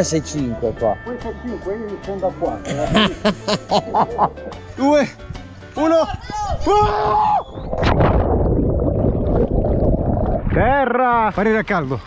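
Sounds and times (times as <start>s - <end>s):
muffled underwater rushing and bubbling: 7.5s - 10.7s.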